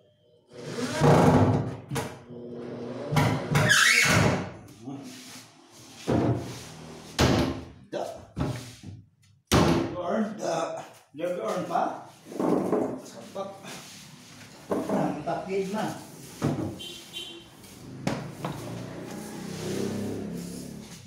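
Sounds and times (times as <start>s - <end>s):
person speaking: 14.8s - 16.2s.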